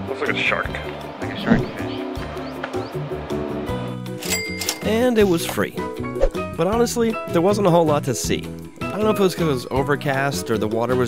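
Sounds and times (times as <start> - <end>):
background music: 0.0 - 11.0
cash register ka-ching: 4.2 - 5.1.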